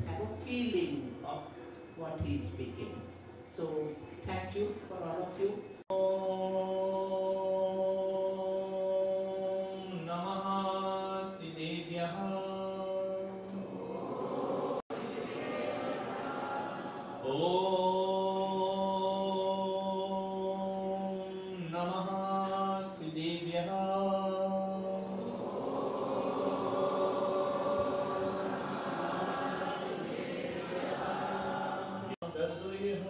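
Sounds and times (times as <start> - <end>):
crowd chanting together: 13.6 - 18.0, 25.2 - 32.2.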